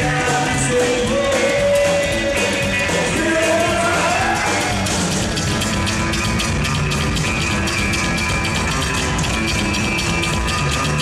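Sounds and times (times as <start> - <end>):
band playing instrumental: 0.0 - 11.0
drum kit beat: 0.0 - 11.0
upright double bass: 0.0 - 11.0.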